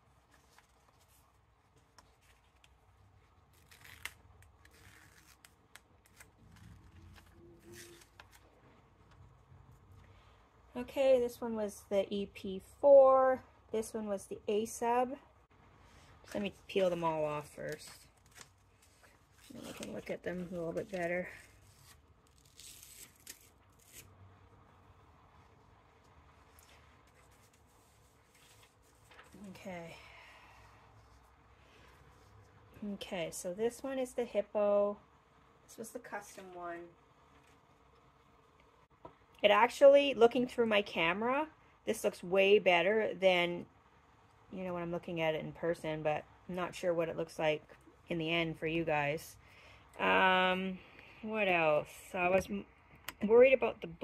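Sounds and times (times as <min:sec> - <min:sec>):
transfer paper rustling and peeling: 0:00.0 - 0:09.2, 0:16.3 - 0:24.1, 0:26.0 - 0:29.7.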